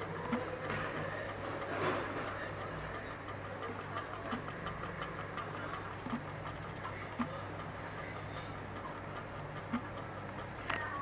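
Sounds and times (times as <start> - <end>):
rapid even motor ticking: 0.0 - 11.0
steady low hum: 0.0 - 11.0.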